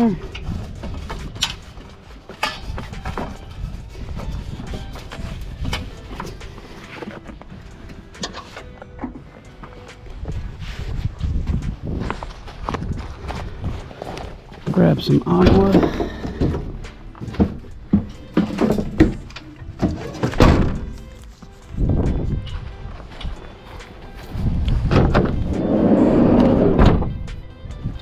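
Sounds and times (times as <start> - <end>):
knocks and clicks of gear handled: 0.3 - 10.5, 11.5 - 25.5
footsteps: 0.5 - 19.2
low rumble: 24.4 - 27.3.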